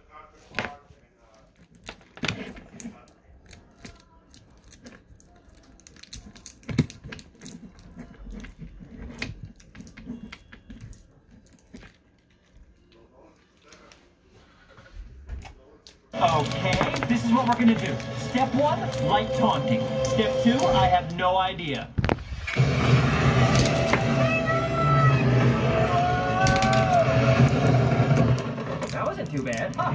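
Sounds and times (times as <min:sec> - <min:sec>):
faint muffled voices: 0:00.0 - 0:10.2, 0:11.0 - 0:21.4.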